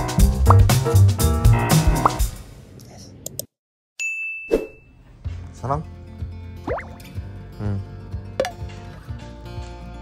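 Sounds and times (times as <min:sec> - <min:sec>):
background music with low beat: 0:00.0 - 0:02.4
bright ding: 0:04.0 - 0:05.0.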